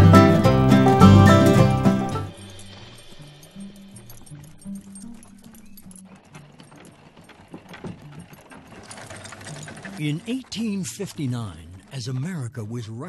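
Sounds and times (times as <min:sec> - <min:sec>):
soft music with low notes: 0:00.0 - 0:09.1
harness clinking: 0:00.2 - 0:12.4
horse hooves clip-clopping: 0:00.2 - 0:12.4.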